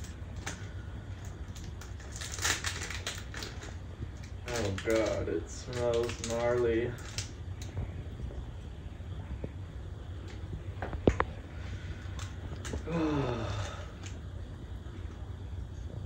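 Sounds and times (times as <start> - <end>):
foil packet crinkling: 0.0 - 7.8.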